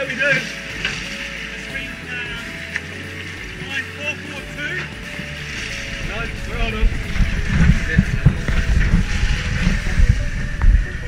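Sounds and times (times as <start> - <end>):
indistinct talking: 0.0 - 11.0
music-like tones: 0.0 - 11.0
low rumble: 4.9 - 11.0.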